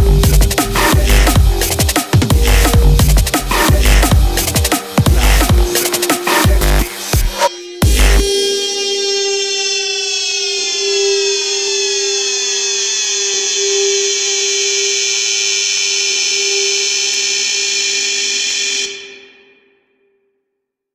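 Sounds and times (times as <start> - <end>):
buzzy synth tone sliding downward: 0.0 - 19.4.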